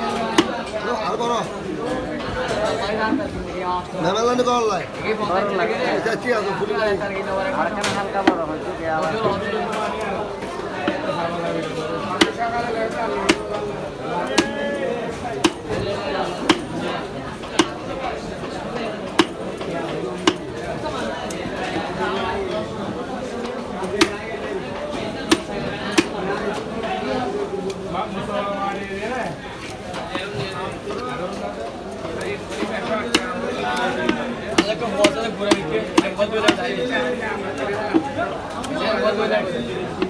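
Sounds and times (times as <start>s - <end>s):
background chatter: 0.0s - 40.0s
knife chopping on wooden block: 0.3s - 0.5s, 12.2s - 12.4s, 13.2s - 13.6s, 14.3s - 14.6s, 15.4s - 15.8s, 16.4s - 16.7s, 19.2s - 19.4s, 24.0s - 24.2s, 25.3s - 26.2s, 34.0s - 36.6s.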